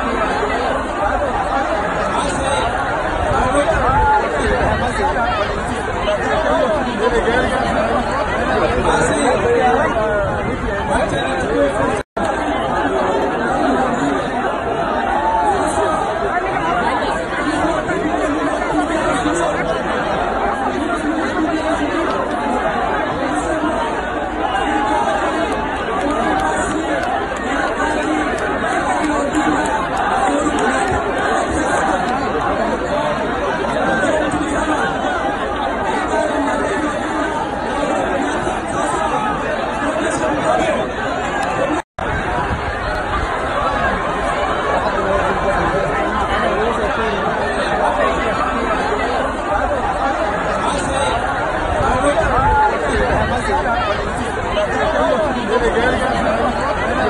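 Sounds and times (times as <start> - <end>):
crowd babble: 0.0 - 57.0.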